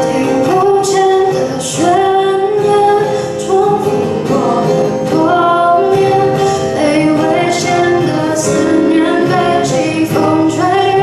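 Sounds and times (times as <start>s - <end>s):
acoustic guitar: 0.0s - 11.0s
woman singing: 0.0s - 11.0s.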